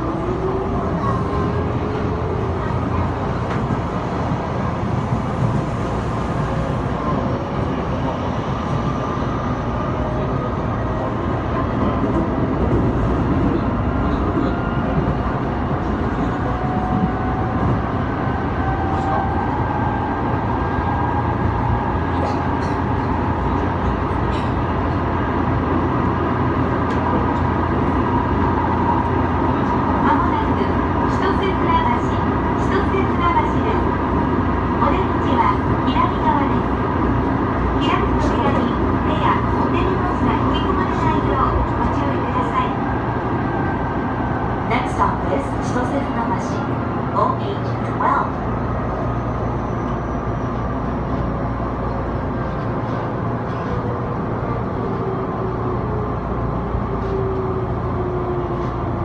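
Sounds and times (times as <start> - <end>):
wheels rumbling on rails: 0.0 - 59.0.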